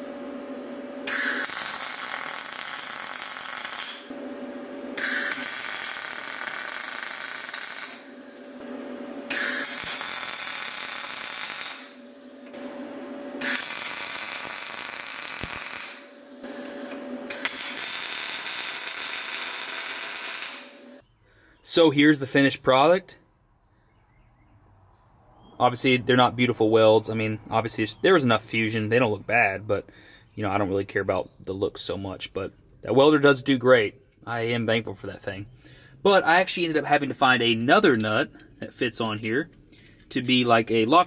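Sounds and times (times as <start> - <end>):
welder arc crackling: 1.1 - 4.1, 5.0 - 8.6, 9.3 - 12.5, 13.4 - 21.0.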